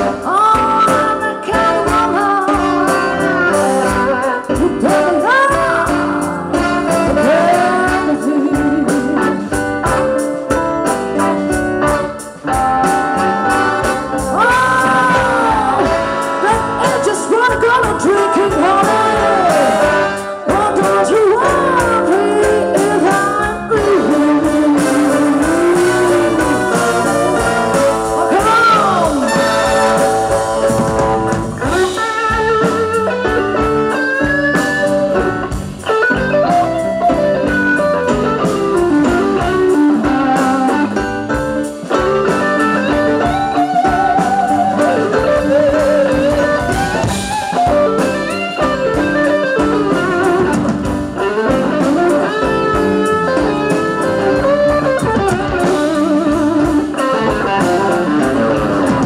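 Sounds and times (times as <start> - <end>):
electric guitar solo: 0.0 - 59.0
live blues band: 0.0 - 59.0.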